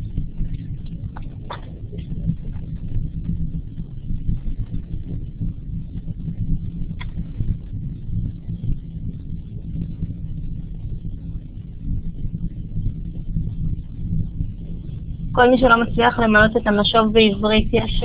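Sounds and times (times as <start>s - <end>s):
low uneven rumbling: 0.0s - 18.0s.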